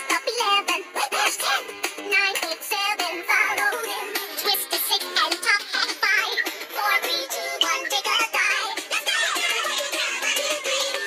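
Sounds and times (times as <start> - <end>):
children's song music: 0.0 - 11.0
high-pitched singing: 0.0 - 11.0.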